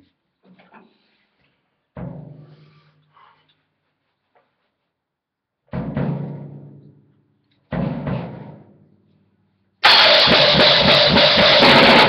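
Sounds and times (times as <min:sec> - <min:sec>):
fast punk drumming with cymbals: 0:09.8 - 0:12.0
punk rock song: 0:09.8 - 0:12.0.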